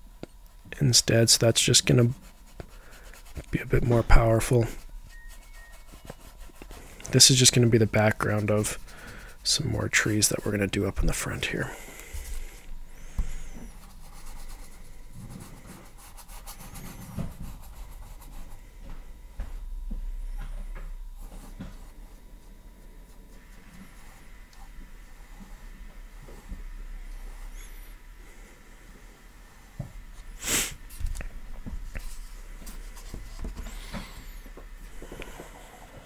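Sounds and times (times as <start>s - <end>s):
paintbrush brushing on canvas: 1.5s - 18.7s.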